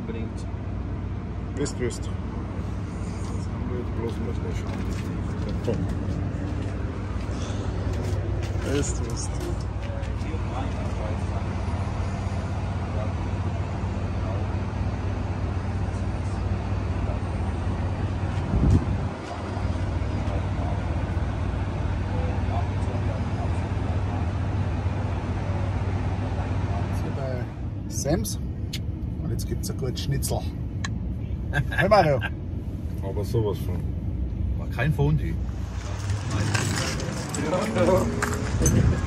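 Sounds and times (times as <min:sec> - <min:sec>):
diesel engines idling: 0:00.0 - 0:39.0
faint voices: 0:35.6 - 0:39.0.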